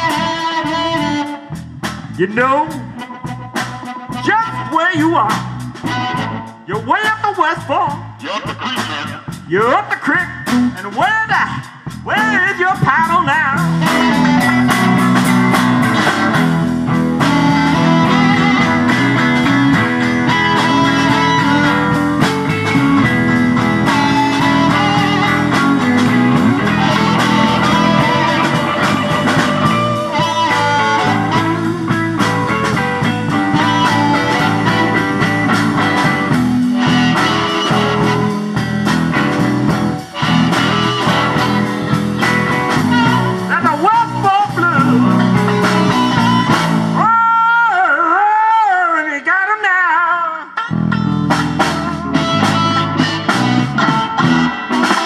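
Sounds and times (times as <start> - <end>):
blues harmonica: 0.0 - 47.3, 50.5 - 55.0
drum kit: 0.0 - 47.4, 50.5 - 55.0
bass guitar: 0.0 - 47.9, 50.4 - 55.0
electric guitars: 0.0 - 48.2, 50.2 - 55.0.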